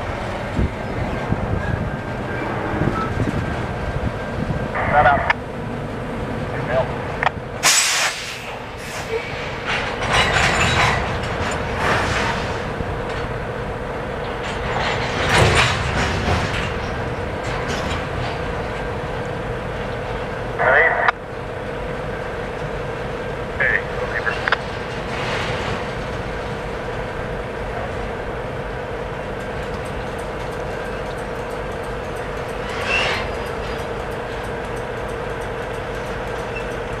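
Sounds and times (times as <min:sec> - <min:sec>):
freight train wheels rumbling on rail: 0:00.0 - 0:37.0
train cars clanking and squealing: 0:00.0 - 0:37.0.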